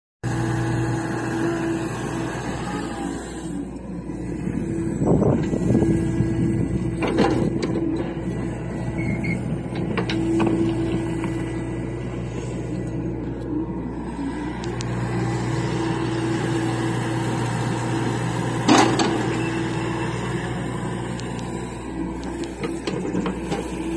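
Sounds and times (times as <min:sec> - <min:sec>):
excavator engine and hydraulics: 0:00.2 - 0:23.9.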